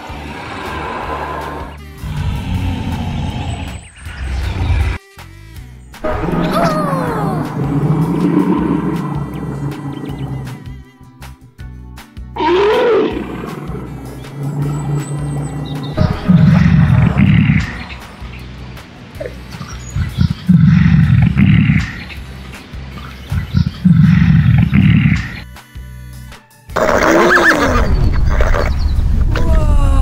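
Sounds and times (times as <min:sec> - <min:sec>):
deep animal roars: 0:00.0 - 0:05.0, 0:06.0 - 0:10.9, 0:12.4 - 0:18.3, 0:20.0 - 0:22.2, 0:23.8 - 0:25.4
background music: 0:00.0 - 0:30.0
short rising and falling cry: 0:06.0 - 0:10.9, 0:12.4 - 0:18.4.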